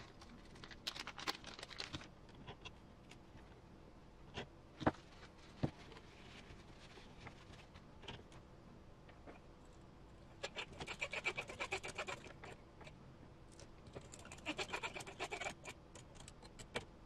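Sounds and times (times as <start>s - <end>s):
small parts crinkling and clicking: 0.0s - 3.2s, 13.5s - 14.7s, 15.4s - 16.9s.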